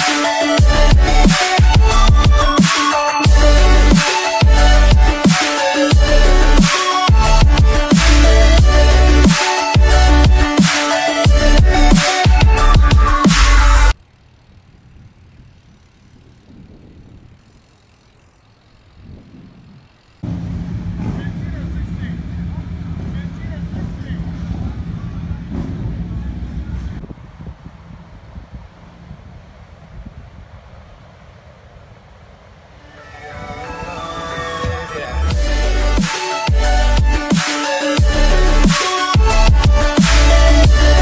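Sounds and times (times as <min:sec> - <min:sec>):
bike rolling on pavement: 0:14.0 - 0:32.8
street traffic: 0:19.8 - 0:37.0
car engine: 0:20.2 - 0:27.0
people's voices: 0:21.0 - 0:27.0.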